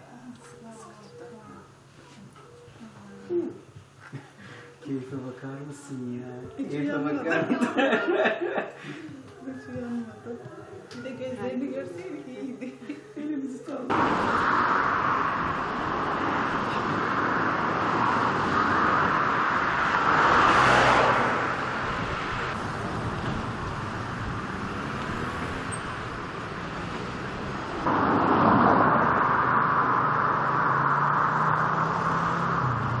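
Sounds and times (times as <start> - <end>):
road traffic: 0.0 - 6.1, 13.1 - 33.0
vehicle passing: 13.9 - 33.0.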